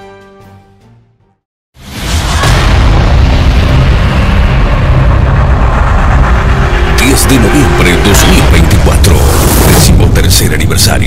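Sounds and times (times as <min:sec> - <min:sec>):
explosion low rumble: 0:01.8 - 0:11.0.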